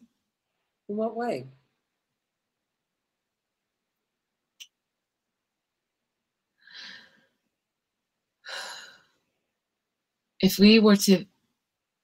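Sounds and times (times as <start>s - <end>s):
person breathing: 6.6s - 7.4s, 8.4s - 9.2s.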